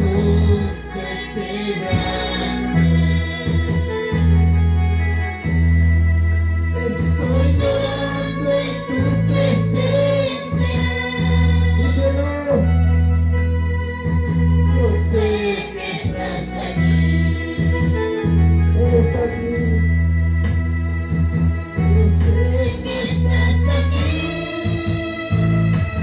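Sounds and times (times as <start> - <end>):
women singing: 0.0 - 4.2, 7.0 - 12.2, 15.2 - 18.2, 22.3 - 25.7
organ sound keyboard chords: 0.0 - 26.0.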